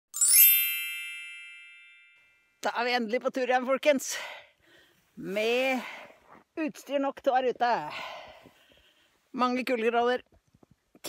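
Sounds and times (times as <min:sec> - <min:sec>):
shimmering bell-like chime: 0:00.1 - 0:02.6.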